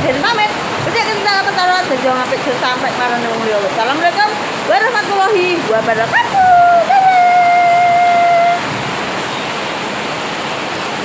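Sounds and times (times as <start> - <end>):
steady rushing noise: 0.0 - 11.0
woman holding a long note: 6.2 - 8.7.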